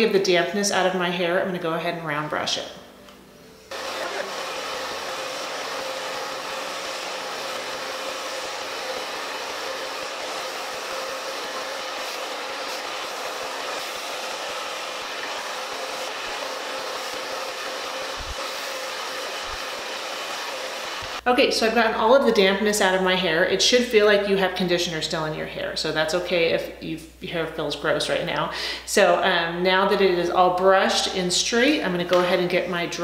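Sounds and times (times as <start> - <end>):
hair dryer blowing air: 3.7 - 21.2.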